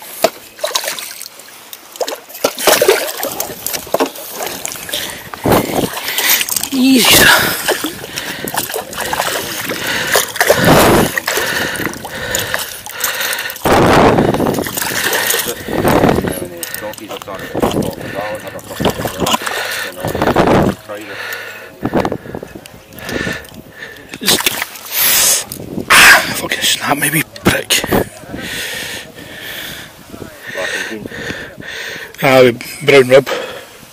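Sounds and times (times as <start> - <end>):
water splashing around net: 0.2 - 20.1, 24.2 - 25.5.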